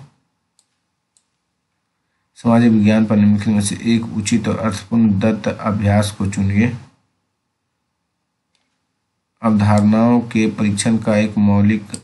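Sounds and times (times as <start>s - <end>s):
computer mouse clicks: 0.5s - 1.4s, 8.5s - 8.9s.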